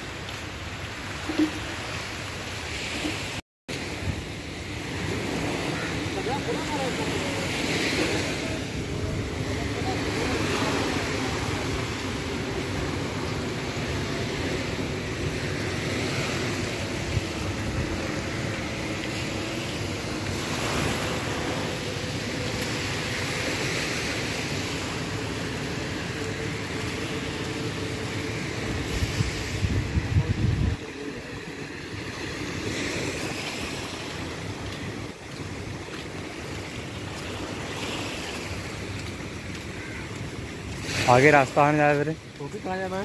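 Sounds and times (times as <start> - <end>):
wind rumbling on microphone: 0.0 - 41.2
small waves on sandy shore: 0.0 - 43.0.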